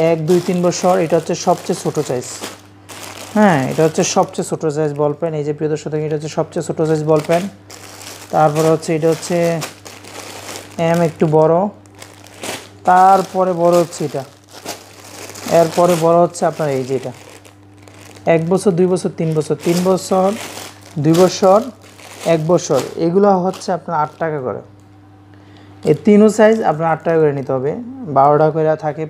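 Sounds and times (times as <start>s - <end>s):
man talking: 0.0s - 2.4s, 3.4s - 7.6s, 8.3s - 9.7s, 10.8s - 11.8s, 12.9s - 14.3s, 15.4s - 17.2s, 18.2s - 24.7s, 25.8s - 29.0s
plastic packaging crinkling: 0.0s - 5.3s, 6.3s - 24.4s
person speaking: 0.0s - 9.8s, 10.6s - 11.8s, 12.4s - 14.4s, 15.3s - 17.4s, 18.2s - 24.8s, 25.8s - 29.0s.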